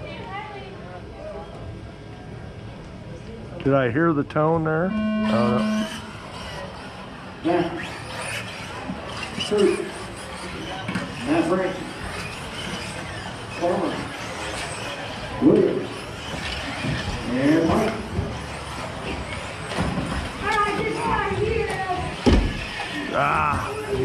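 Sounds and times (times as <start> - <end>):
indistinct voices in a hall: 0.0 - 24.0
steady background noise: 0.0 - 24.0.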